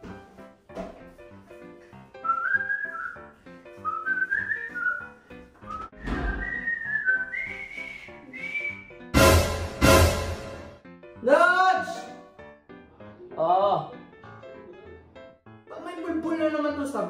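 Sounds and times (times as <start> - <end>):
light background music: 0.0 - 17.0
person whistling a tune: 2.2 - 9.1.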